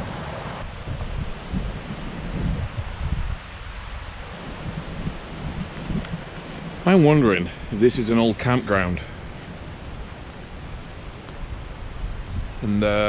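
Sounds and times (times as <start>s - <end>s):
steady hiss: 0.0s - 13.0s
wind buffeting microphone: 0.0s - 13.0s.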